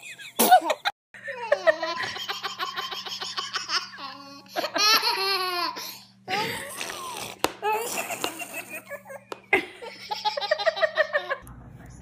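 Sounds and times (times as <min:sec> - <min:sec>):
baby laughing: 0:00.4 - 0:11.3.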